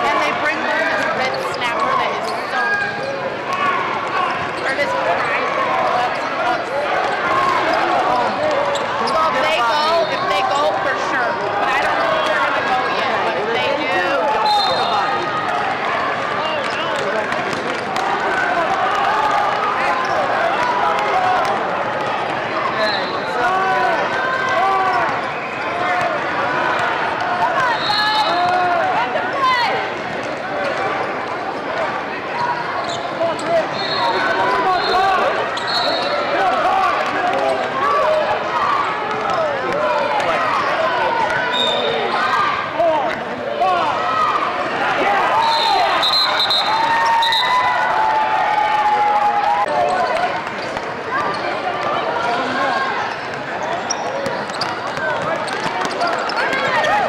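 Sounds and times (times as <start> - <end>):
sneaker squeaks: 0.9 - 3.7, 32.3 - 36.3, 40.6 - 42.2, 49.8 - 51.6, 52.3 - 57.0
referee whistle blasts: 14.4 - 15.1, 33.7 - 35.0, 35.6 - 36.2, 45.4 - 47.7.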